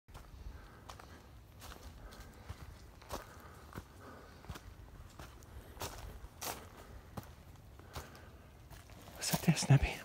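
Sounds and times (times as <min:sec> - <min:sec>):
footsteps on grass and leaves: 0:00.1 - 0:10.0.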